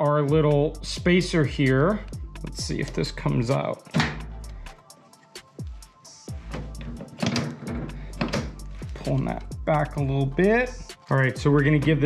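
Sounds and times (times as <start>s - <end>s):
music with drums and bass: 0.0s - 12.0s.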